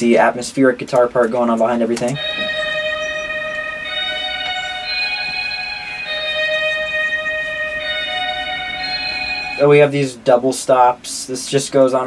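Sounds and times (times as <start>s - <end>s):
atmospheric reverb guitar melody: 2.2s - 10.0s.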